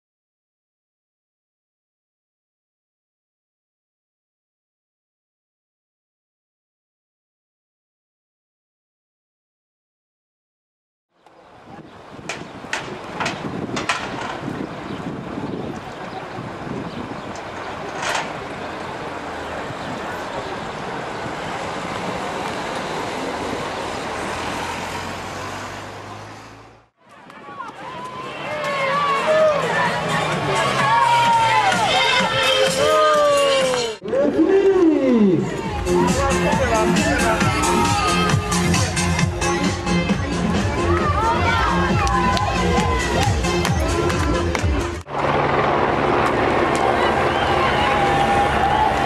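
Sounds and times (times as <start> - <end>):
vehicle engine humming: 11.2 - 32.7, 34.0 - 49.0
crowd voices and shouts: 27.0 - 49.0
engine drone: 44.8 - 49.0.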